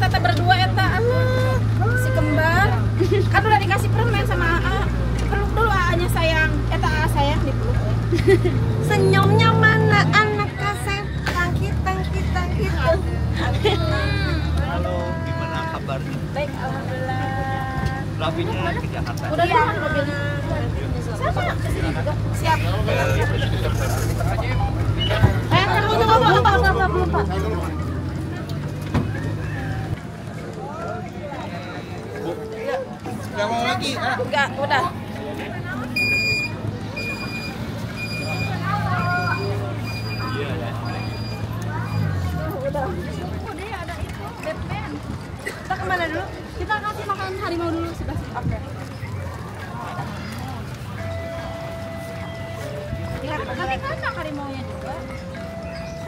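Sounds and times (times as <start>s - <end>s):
bus engine humming: 0.0s - 56.0s
chatter of children and adults: 0.0s - 56.0s
faint voices: 0.0s - 56.0s.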